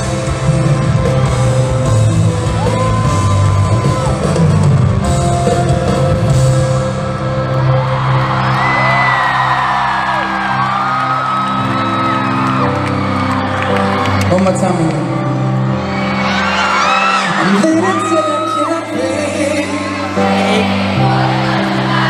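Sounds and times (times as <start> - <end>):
fans screaming: 0.0 - 5.1, 7.4 - 14.6, 15.6 - 22.0
crowd cheering: 0.0 - 22.0.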